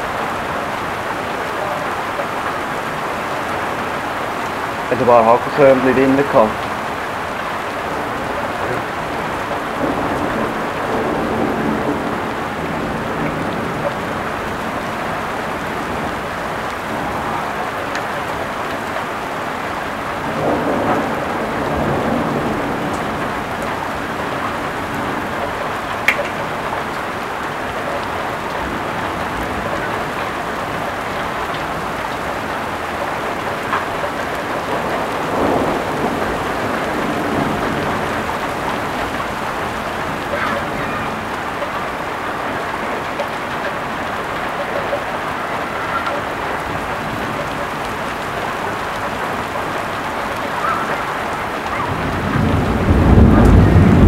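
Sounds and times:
heavy rain pouring: 0.0 - 54.0
thunder rumbling: 0.0 - 54.0.

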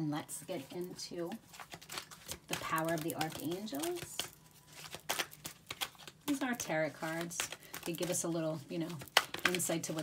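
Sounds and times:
cards being shuffled: 0.6 - 10.0.

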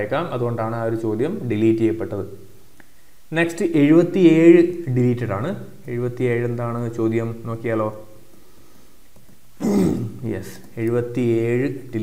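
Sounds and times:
man grunting: 9.6 - 10.2.

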